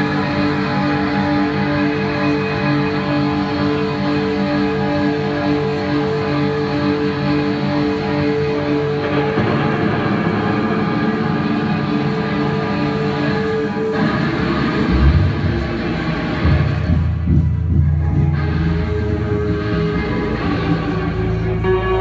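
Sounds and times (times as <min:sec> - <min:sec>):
electric guitars ringing: 0:00.0 - 0:22.0
live rock band playing: 0:00.0 - 0:22.0
deep bass notes: 0:14.0 - 0:22.0.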